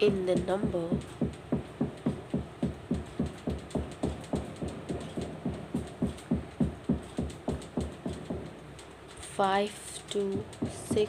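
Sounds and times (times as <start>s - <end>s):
rhythmic low thumps: 0.0s - 8.8s, 10.2s - 11.0s.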